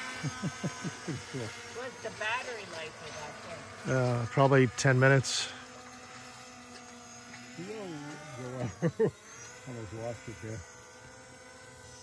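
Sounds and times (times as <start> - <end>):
drone propellers humming: 0.0 - 12.0.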